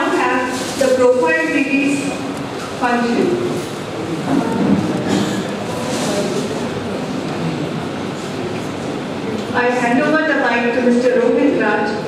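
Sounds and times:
murmur of indistinct voices: 0.0s - 12.0s.

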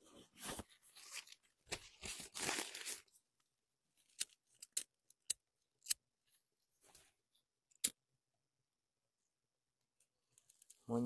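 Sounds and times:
plastic bag and foliage rustling: 0.4s - 3.2s.

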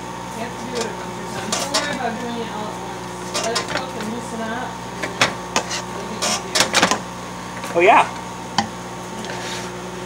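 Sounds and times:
microwave oven humming: 0.0s - 10.0s.

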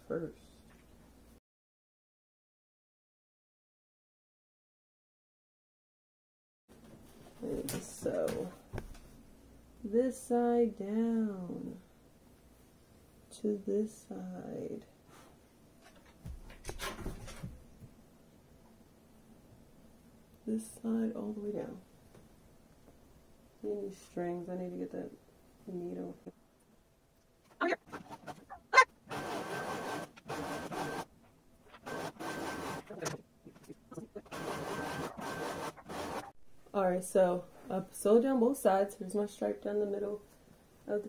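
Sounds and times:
sewing machine stitching: 29.1s - 31.1s, 31.8s - 33.2s, 34.2s - 36.3s.

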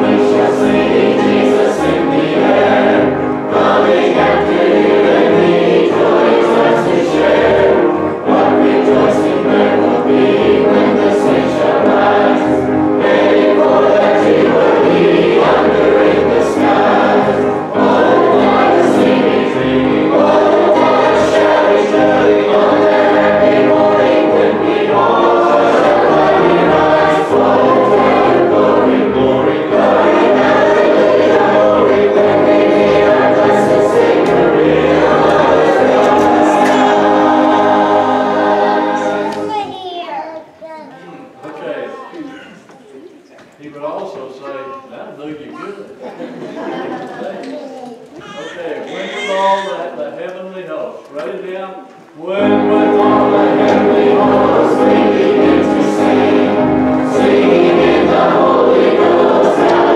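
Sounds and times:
many voices singing a hymn: 0.0s - 39.6s, 45.9s - 47.4s, 48.2s - 50.1s, 51.3s - 59.9s.

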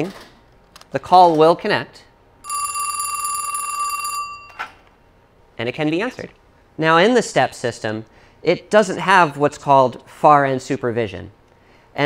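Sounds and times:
telephone bell ringing: 2.4s - 4.8s.

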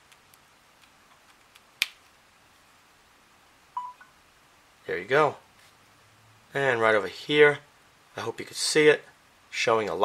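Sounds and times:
phone single-tone beep: 3.8s - 4.1s.

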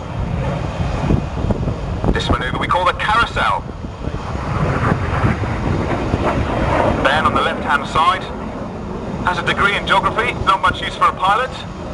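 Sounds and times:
jet flying overhead: 0.0s - 11.9s
wind buffeting microphone: 0.0s - 11.9s.

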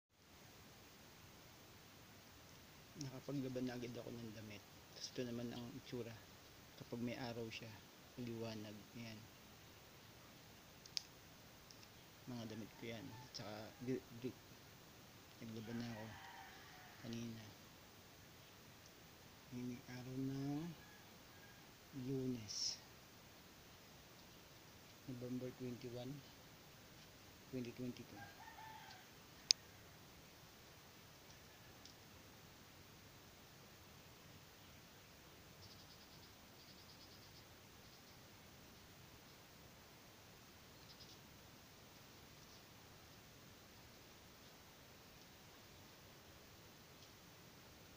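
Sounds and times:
insect chirping: 0.2s - 47.9s
faint ticks: 10.8s - 12.0s, 15.2s - 17.6s, 28.8s - 29.8s, 30.6s - 32.1s, 35.6s - 38.2s, 40.7s - 41.3s, 41.9s - 43.2s, 43.8s - 46.0s, 46.9s - 47.9s.

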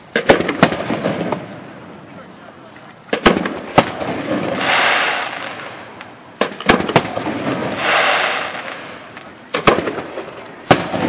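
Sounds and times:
firework bangs: 0.0s - 1.8s, 3.1s - 11.0s
firework hissing rush: 3.8s - 5.7s, 7.0s - 9.1s.

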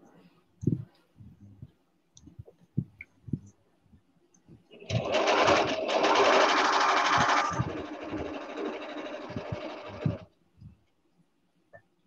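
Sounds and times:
electric sewing machine stitching: 4.7s - 10.3s.

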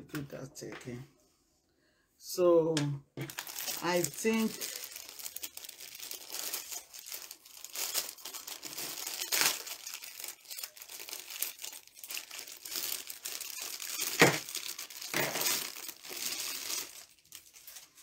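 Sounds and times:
plastic bag crinkling: 3.2s - 18.0s
sharp plastic crackle: 3.2s - 18.0s.

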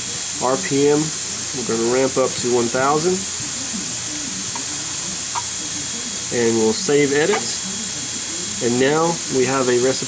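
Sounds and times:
high-pitched background hiss: 0.0s - 10.0s.

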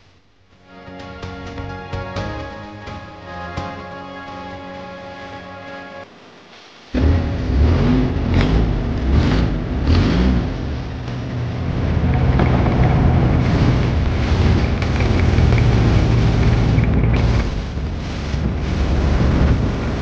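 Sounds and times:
water noise: 6.9s - 20.0s
boat engine running loud: 7.0s - 20.0s
wind noise: 7.0s - 20.0s.

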